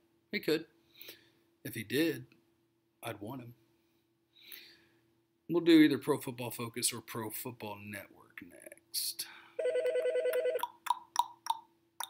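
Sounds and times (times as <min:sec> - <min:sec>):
electronic trilling ring: 0:09.6 - 0:10.6.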